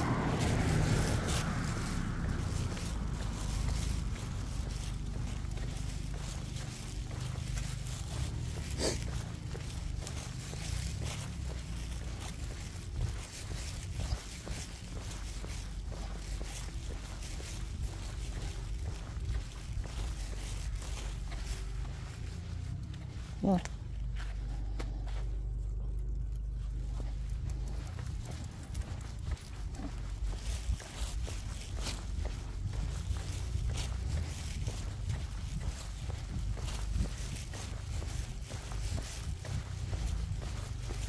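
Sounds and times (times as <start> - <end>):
footsteps on concrete: 0.0 - 41.0
steady low rumble: 0.0 - 41.0.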